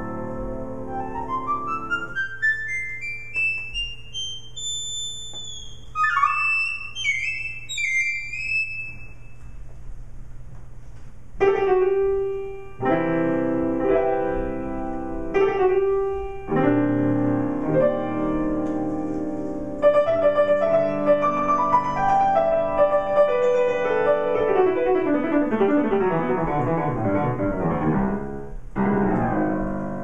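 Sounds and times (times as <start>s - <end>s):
acoustic piano: 0.0s - 30.0s
electronic wind instrument improvising: 1.8s - 9.2s.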